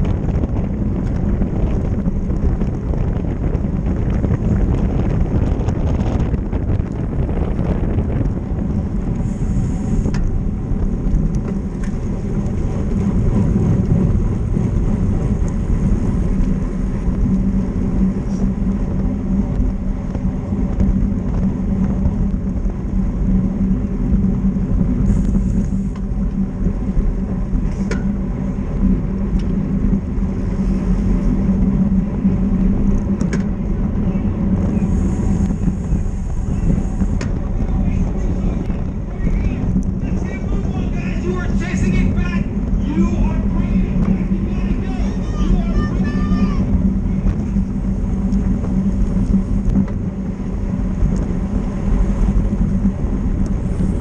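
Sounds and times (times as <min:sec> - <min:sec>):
bicycle tyre and road noise: 0:00.0 - 0:54.0
wind rush over microphone: 0:00.0 - 0:54.0.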